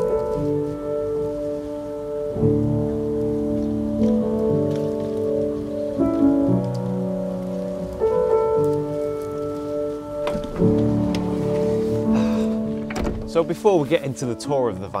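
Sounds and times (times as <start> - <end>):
music with sustained chords: 0.0 - 15.0.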